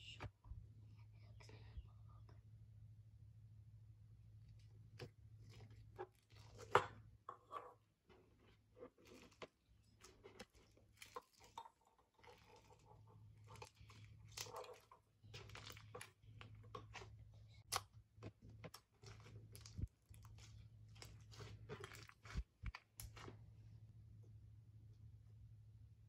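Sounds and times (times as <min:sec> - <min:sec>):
slime crackling and crunching: 0:08.9 - 0:23.4.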